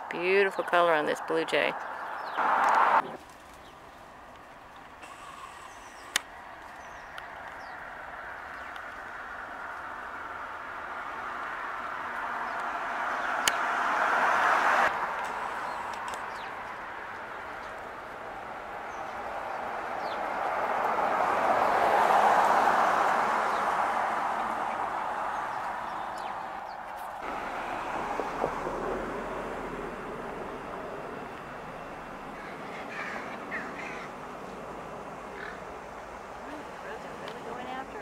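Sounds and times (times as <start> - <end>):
vehicle passing: 0.0 - 38.0
crows cawing: 32.3 - 34.3, 35.3 - 35.8.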